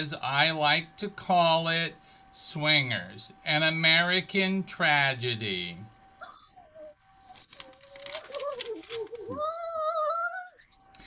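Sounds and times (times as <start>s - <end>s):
woman giggling: 8.6s - 9.4s.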